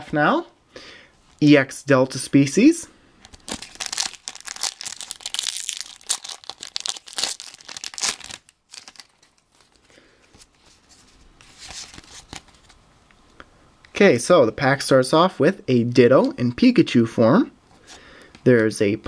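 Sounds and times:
foil wrapper tearing and crinkling: 0:03.3 - 0:09.8
foil wrapper rustling: 0:03.3 - 0:12.6.

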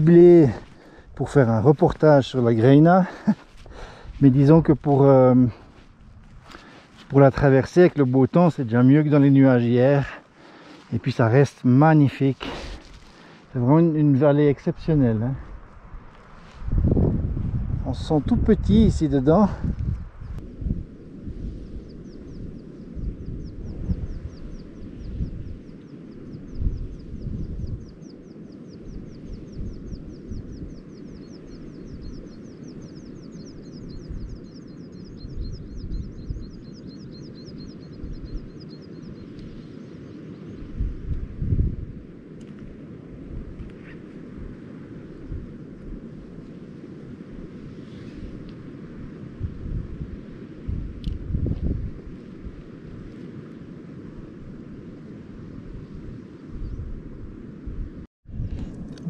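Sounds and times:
wind buffeting microphone: 0:10.9 - 0:59.0.

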